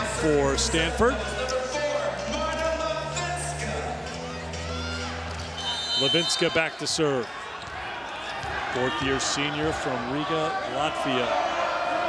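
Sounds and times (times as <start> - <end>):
music over public address: 0.0 - 7.3
crowd voices: 0.0 - 12.0.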